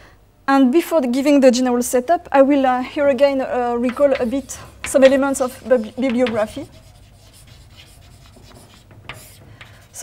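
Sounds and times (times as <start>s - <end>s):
chalk writing on blackboard: 3.8s - 10.0s.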